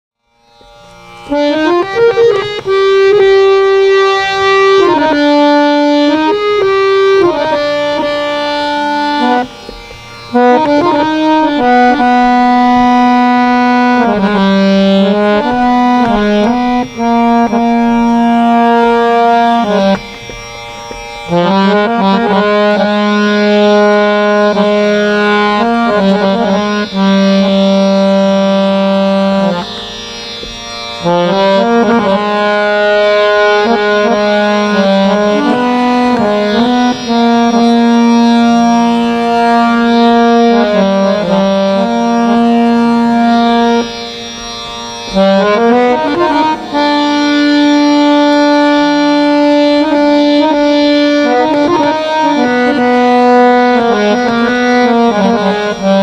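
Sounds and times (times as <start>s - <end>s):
harmonium holding long note: 0.3s - 56.0s.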